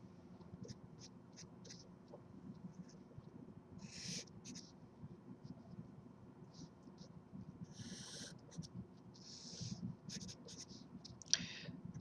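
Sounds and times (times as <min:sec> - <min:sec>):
marker drawing on paper: 0:03.8 - 0:04.7, 0:07.7 - 0:10.9.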